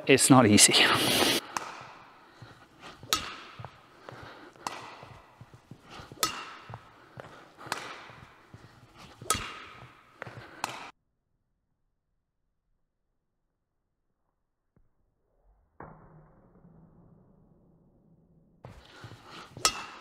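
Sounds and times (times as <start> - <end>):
racket hitting shuttlecock: 1.4 - 10.9, 18.7 - 20.0.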